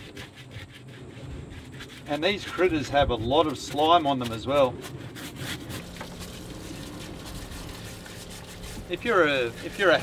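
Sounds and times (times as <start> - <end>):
water rushing from hose: 1.5 - 10.0.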